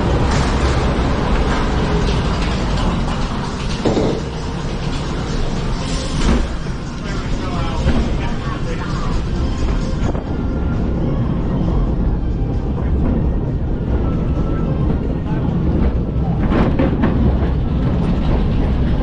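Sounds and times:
music: 0:00.0 - 0:19.0
ride vehicle clatter: 0:00.0 - 0:19.0
ride wheels rumbling and rattling: 0:00.0 - 0:19.0.

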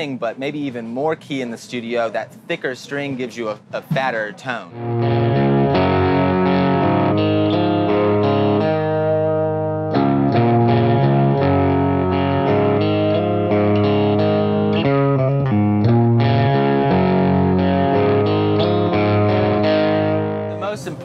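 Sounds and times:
distorted electric guitar chords: 0:04.7 - 0:21.0.

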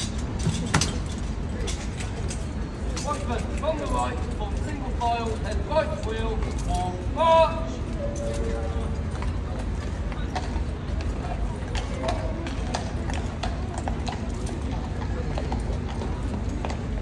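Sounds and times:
horse hooves clip-clopping: 0:00.0 - 0:17.0.

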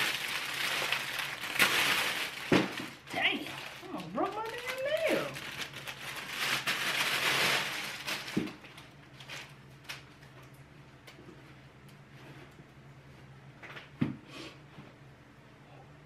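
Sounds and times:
plastic bag crinkling: 0:00.0 - 0:10.6.

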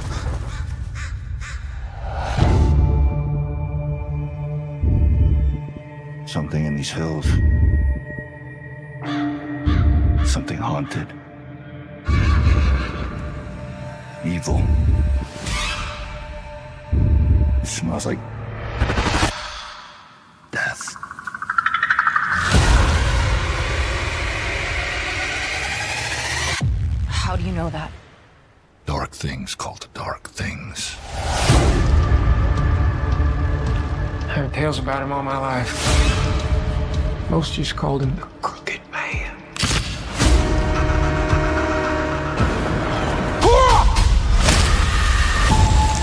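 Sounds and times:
crows cawing: 0:00.0 - 0:02.0
low droning music: 0:02.3 - 0:19.6, 0:31.4 - 0:46.0
pulsing rising tone: 0:20.9 - 0:26.6.

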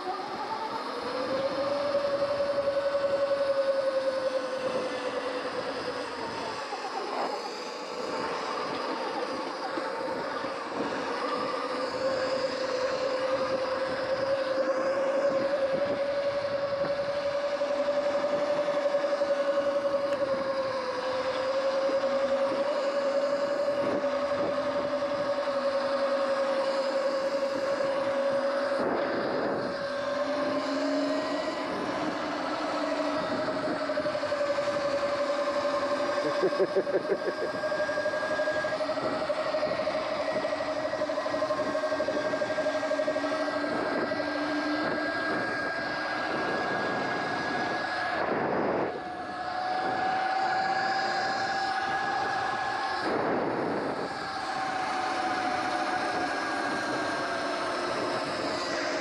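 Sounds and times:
electric motor whining: 0:00.0 - 0:59.0.

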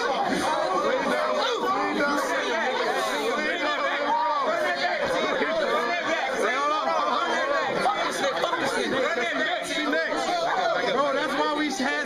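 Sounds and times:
young men talking and shouting: 0:00.0 - 0:12.0.

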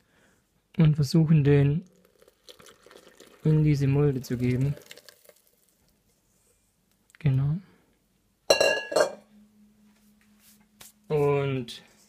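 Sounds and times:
metal bowl clanking on stone: 0:08.5 - 0:09.2.

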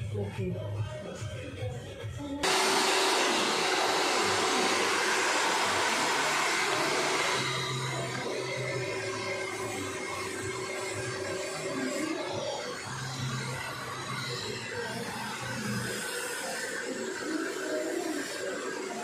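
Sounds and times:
hair dryer blowing: 0:02.4 - 0:19.0.

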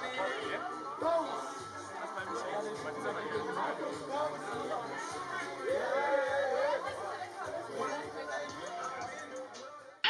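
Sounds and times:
indistinct chatter: 0:00.0 - 0:10.0.

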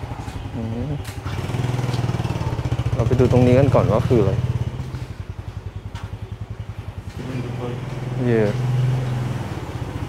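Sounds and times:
small engine idling: 0:00.6 - 0:10.0.

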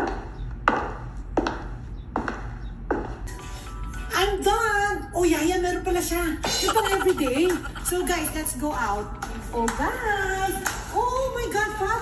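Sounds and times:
light background music: 0:00.5 - 0:12.0
woman talking: 0:04.1 - 0:12.0.

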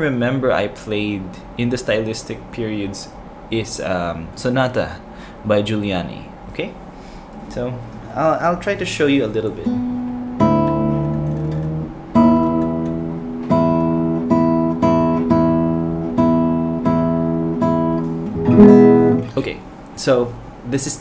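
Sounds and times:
classical guitar chord plucked: 0:09.5 - 0:19.4.

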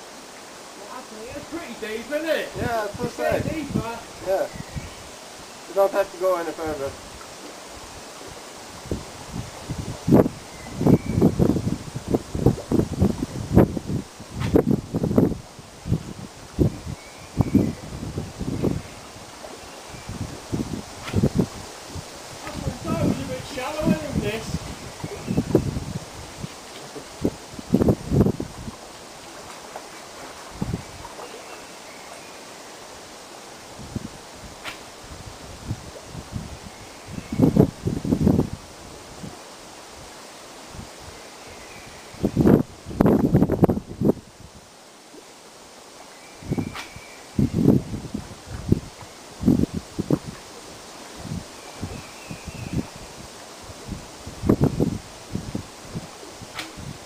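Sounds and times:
choppy lake water: 0:00.0 - 0:57.0
wind through trees: 0:00.0 - 0:57.0
wind buffeting microphone: 0:01.2 - 0:32.0, 0:33.5 - 0:40.1, 0:40.7 - 0:44.7, 0:46.3 - 0:57.0.

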